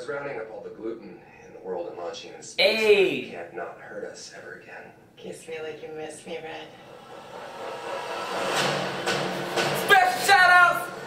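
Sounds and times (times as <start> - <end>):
rising whoosh: 6.9 - 9.6.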